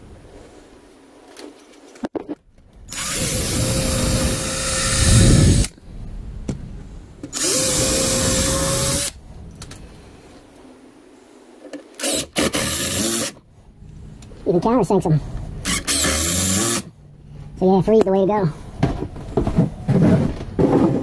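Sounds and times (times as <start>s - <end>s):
cordless drill driving screws: 2.9s - 5.7s, 7.3s - 9.1s, 12.0s - 13.4s, 15.6s - 16.9s.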